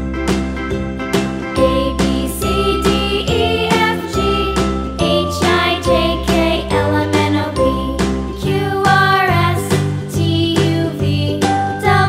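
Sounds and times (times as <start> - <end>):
bright children's music: 0.0 - 12.0.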